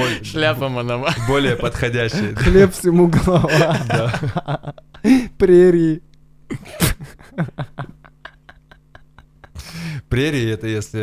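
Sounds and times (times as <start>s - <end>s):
men laughing hard: 1.1s - 5.3s, 6.5s - 9.9s.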